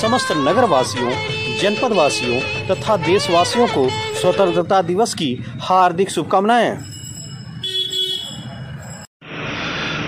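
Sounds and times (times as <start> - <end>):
distant vehicle horn toot: 7.6 - 8.5.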